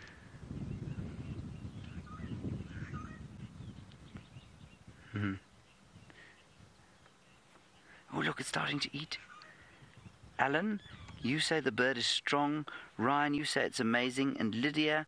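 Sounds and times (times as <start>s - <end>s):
faint bird chirps: 0.0s - 11.5s.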